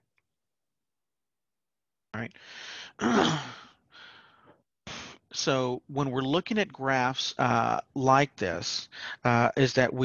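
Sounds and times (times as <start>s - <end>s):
person breathing in: 2.4s - 5.2s
voiced sigh: 2.4s - 5.2s.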